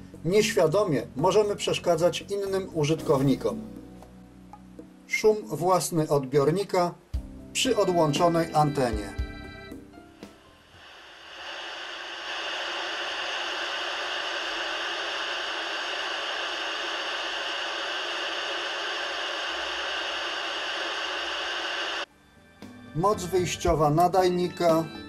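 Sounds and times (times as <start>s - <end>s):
radio receiver hiss: 10.2s - 22.1s.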